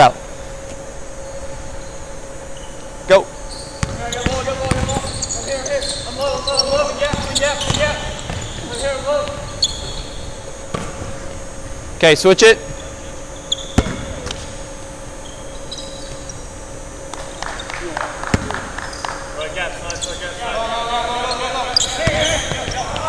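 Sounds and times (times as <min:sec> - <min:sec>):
basketball bouncing on hardwood floor: 0:03.8 - 0:05.1, 0:06.7 - 0:10.0, 0:13.8 - 0:14.4.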